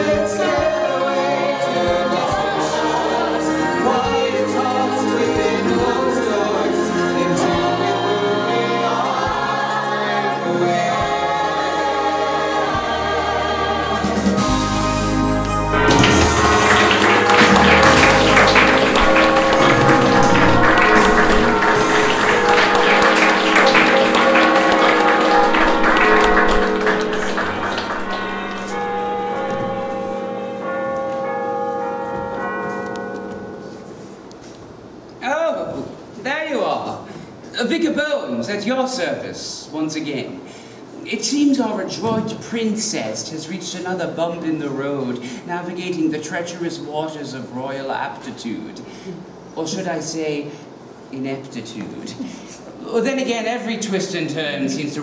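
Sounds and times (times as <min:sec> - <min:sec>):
cast singing together: 0:00.0 - 0:14.6
keyboard accompaniment: 0:00.0 - 0:35.2
audience applause: 0:15.7 - 0:29.9.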